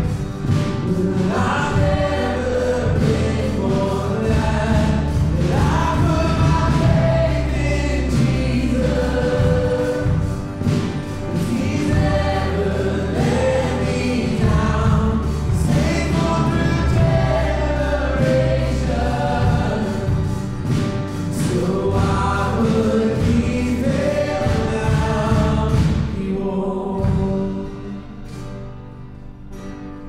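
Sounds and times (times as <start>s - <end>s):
voices singing together: 0.0s - 28.0s
worship band playing: 0.0s - 29.7s.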